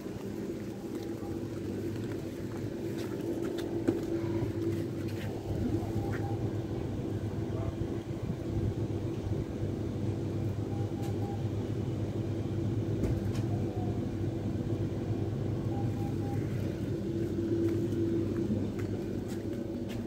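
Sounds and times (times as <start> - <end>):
train equipment humming: 0.0 - 20.0.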